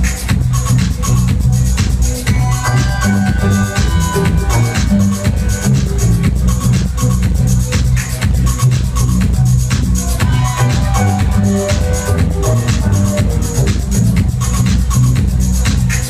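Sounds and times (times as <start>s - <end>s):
house music over sound system: 0.0s - 16.0s.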